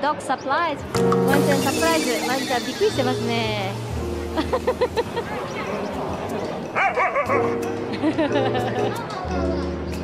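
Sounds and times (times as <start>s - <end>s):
background music: 0.8s - 10.0s.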